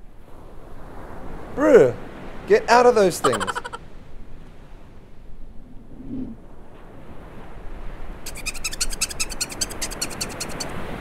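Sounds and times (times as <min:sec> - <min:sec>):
ocean surf: 0:00.1 - 0:04.8
high-pitched chattering trill: 0:03.2 - 0:03.8, 0:08.3 - 0:10.7.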